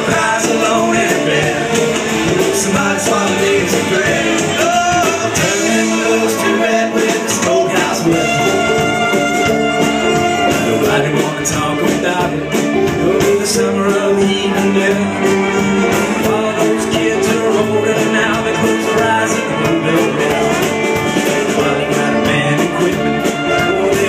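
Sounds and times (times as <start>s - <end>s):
bluegrass string band playing: 0.0s - 24.0s.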